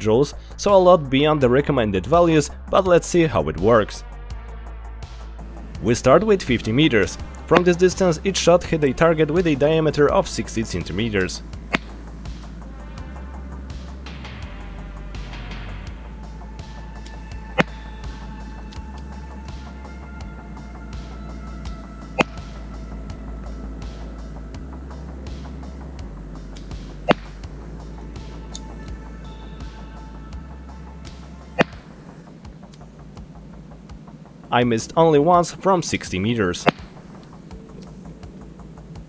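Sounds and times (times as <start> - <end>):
background music with bass line: 0.0 - 39.0.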